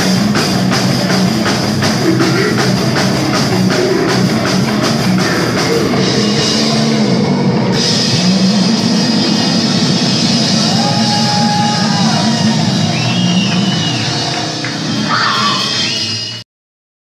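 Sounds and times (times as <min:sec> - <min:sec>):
death metal band playing: 0:00.0 - 0:16.2.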